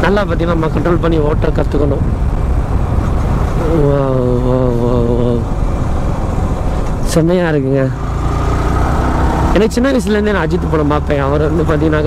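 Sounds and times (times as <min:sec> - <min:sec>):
wind rush: 0:00.0 - 0:09.8
motorcycle running: 0:00.0 - 0:12.0
person holding drawn-out vocal sound: 0:03.6 - 0:05.5.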